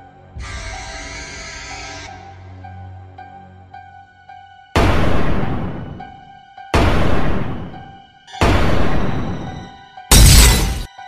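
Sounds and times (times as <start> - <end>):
glass shattering: 10.1 - 10.9.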